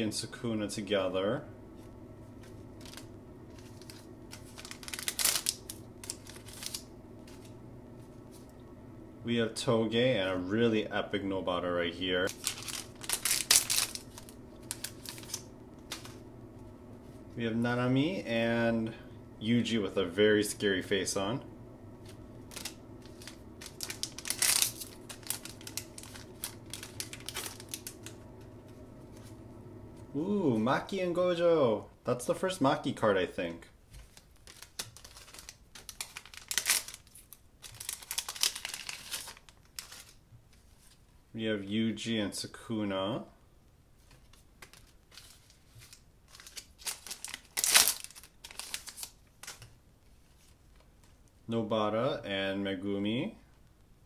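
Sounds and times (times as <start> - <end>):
wrapper tearing and crinkling: 2.8 - 7.5, 12.2 - 16.2, 22.1 - 28.2, 34.0 - 40.2, 44.6 - 49.7.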